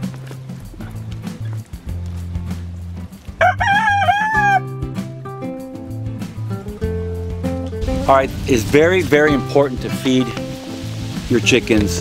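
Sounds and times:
background music with low notes: 0.0s - 12.0s
rooster crowing: 3.4s - 4.8s.

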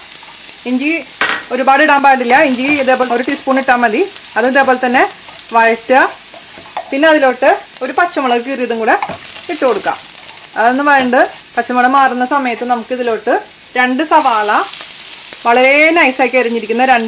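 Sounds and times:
spatula stirring in pan: 0.0s - 0.6s, 2.0s - 11.6s
spices sizzling in hot oil: 0.0s - 17.0s
woman talking: 0.7s - 6.2s, 6.9s - 10.0s, 10.6s - 14.7s, 15.5s - 17.0s.

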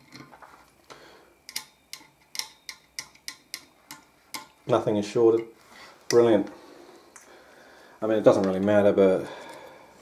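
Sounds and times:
probe tips clicking on metal: 1.5s - 4.6s.

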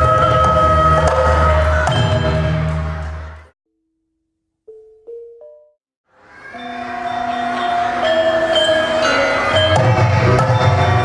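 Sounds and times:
gamelan metallophone notes: 6.6s - 11.0s.

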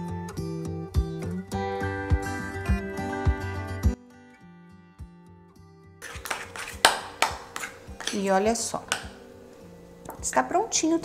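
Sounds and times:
soft guitar music: 0.0s - 6.0s
metal spoon scraping glass bowl: 6.0s - 6.9s, 7.6s - 8.4s.

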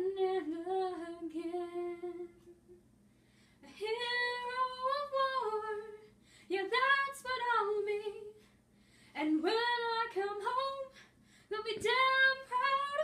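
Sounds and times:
woman singing unaccompanied: 0.0s - 2.5s, 3.7s - 8.4s, 9.2s - 10.9s, 11.5s - 13.0s.

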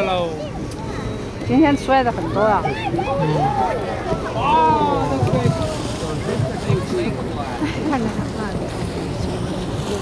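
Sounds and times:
boat rumble: 0.0s - 10.0s.

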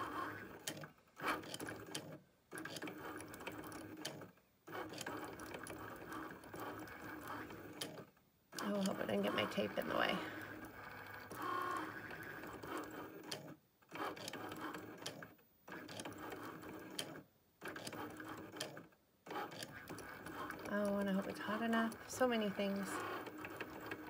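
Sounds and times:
cutting machine motors running: 0.0s - 8.0s, 8.6s - 24.0s.

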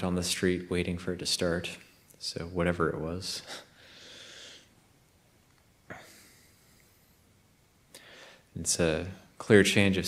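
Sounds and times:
soft breaths: 3.4s - 5.0s, 5.8s - 8.6s.

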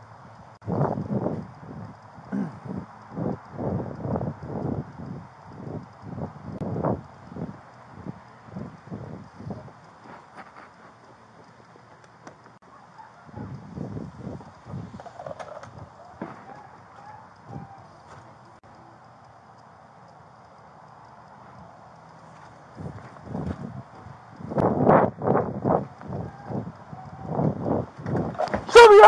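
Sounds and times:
footsteps walking: 10.0s - 12.6s, 16.1s - 18.4s, 22.2s - 24.1s.

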